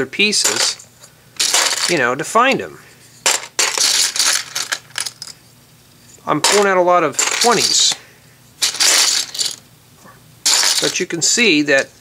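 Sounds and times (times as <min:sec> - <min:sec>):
plastic bricks clattering: 0:00.4 - 0:00.8, 0:01.4 - 0:02.0, 0:03.2 - 0:05.4, 0:06.4 - 0:08.0, 0:08.6 - 0:09.6, 0:10.5 - 0:11.0.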